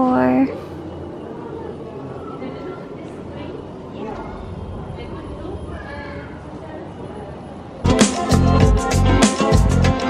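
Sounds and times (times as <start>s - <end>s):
indistinct voices: 0.0s - 9.0s
hall room noise: 0.0s - 10.0s.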